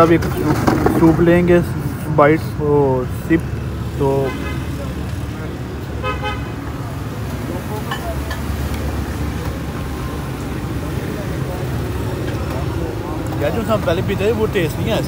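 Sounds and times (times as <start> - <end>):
traffic engine rumble: 0.0 - 15.0.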